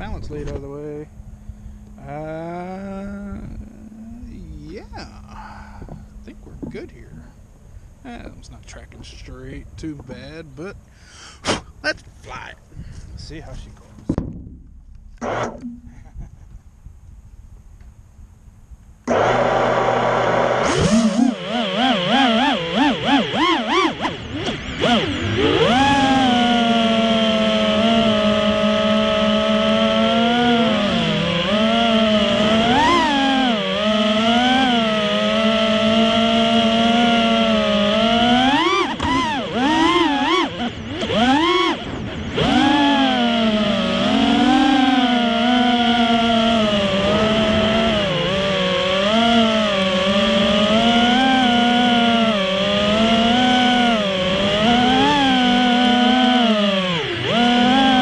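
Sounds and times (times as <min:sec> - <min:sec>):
quadcopter motors whining: 0:00.0 - 0:14.2, 0:14.9 - 0:16.7, 0:19.0 - 0:58.0.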